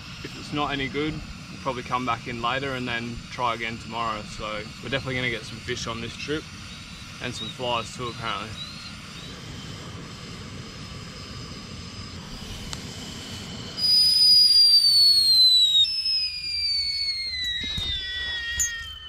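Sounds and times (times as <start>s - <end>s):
kettle hissing: 0.0s - 19.0s
kettle whistling: 0.0s - 19.0s.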